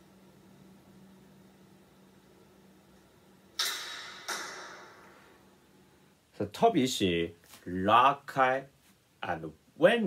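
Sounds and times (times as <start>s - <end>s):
faint steady hum: 0.0s - 10.0s
bow string snapping: 3.6s - 5.0s.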